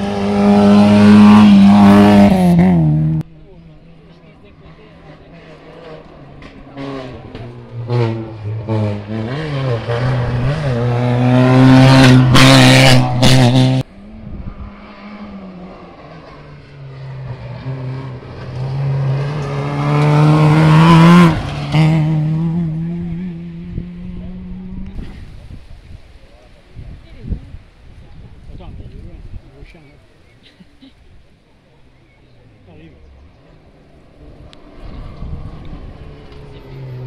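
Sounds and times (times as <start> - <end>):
rally car engine at full throttle: 0.0 - 27.6, 32.0 - 37.0.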